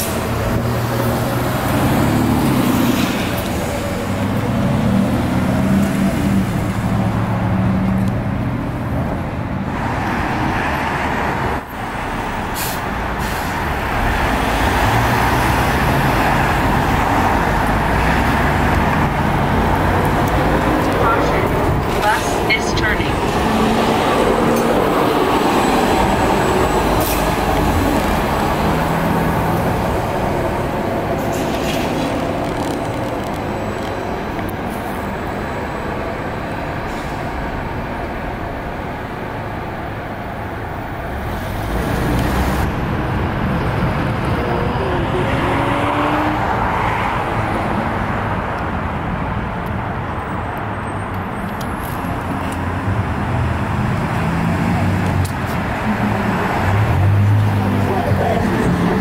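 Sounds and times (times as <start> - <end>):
car engines humming: 0.0 - 59.0
electric trolleybus moving: 0.0 - 59.0
voices nearby: 57.5 - 59.0.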